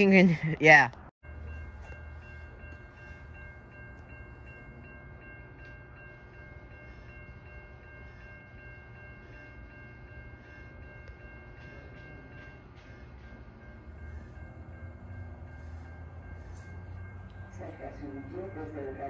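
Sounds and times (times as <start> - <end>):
distant train rumble: 0.0 - 19.0.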